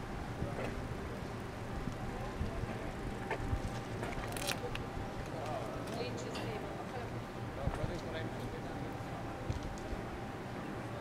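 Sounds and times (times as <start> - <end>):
low uneven street rumble: 0.0 - 11.0.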